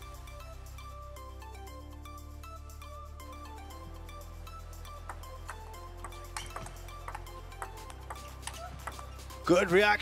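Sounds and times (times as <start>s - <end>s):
background music: 0.0s - 10.0s
table tennis ball clicks: 5.5s - 9.0s.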